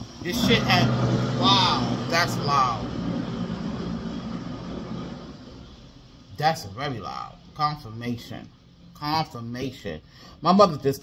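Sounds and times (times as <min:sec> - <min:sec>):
loud vehicle passing: 0:00.2 - 0:06.0.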